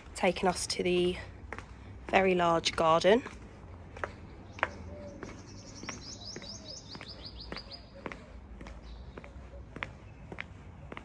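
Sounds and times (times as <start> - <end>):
footsteps on paving stones: 0.0 - 11.0
small bird chirping: 4.5 - 8.1.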